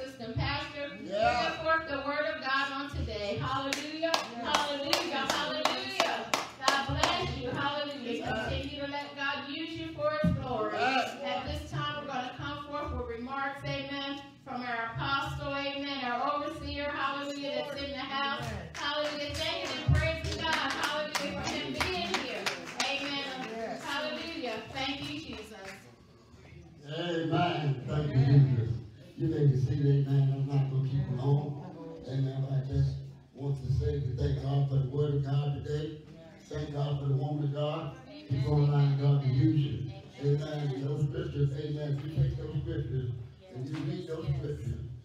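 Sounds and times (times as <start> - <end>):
woman speaking into microphone: 0.0 - 25.9, 27.4 - 28.7
hands clapping in a steady beat: 3.6 - 7.4, 18.4 - 25.9.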